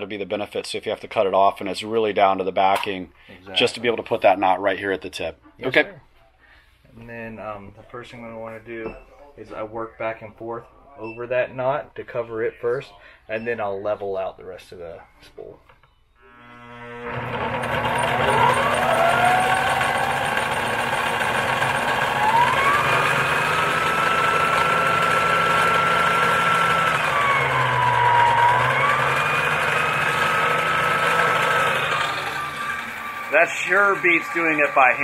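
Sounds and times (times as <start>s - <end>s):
line spooling machine motor whine: 16.2s - 35.0s.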